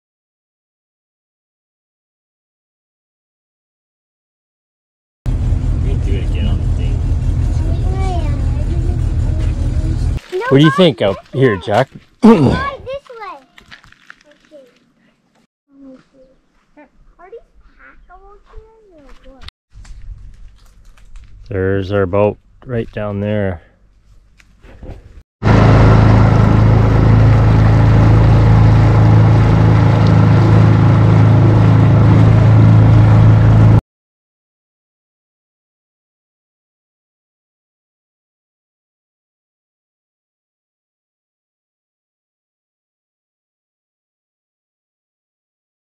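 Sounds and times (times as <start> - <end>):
boat motor rumble: 5.3 - 10.2, 25.4 - 33.8.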